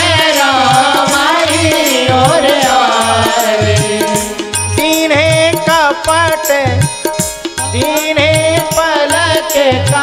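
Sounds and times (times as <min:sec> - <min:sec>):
drum beating: 0:00.0 - 0:10.0
man singing devotional song: 0:00.0 - 0:10.0.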